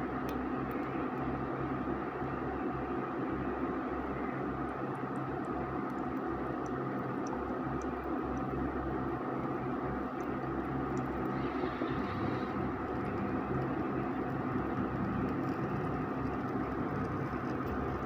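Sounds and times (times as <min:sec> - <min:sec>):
cooktop whirring hum: 0:00.0 - 0:18.0.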